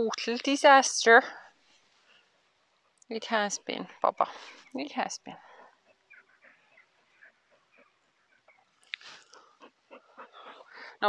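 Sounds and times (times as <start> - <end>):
dog sniffing and snuffling: 5.5 - 11.0.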